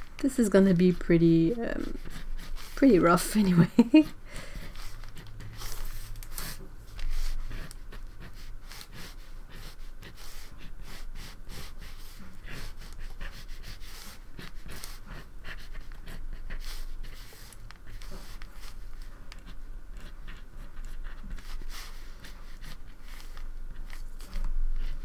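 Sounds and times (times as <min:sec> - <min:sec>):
pencil scratching on paper: 0:00.2 - 0:25.0.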